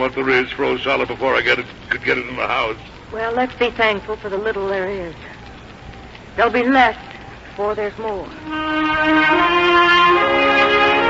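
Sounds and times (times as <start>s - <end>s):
orchestral held chords: 8.4s - 11.0s.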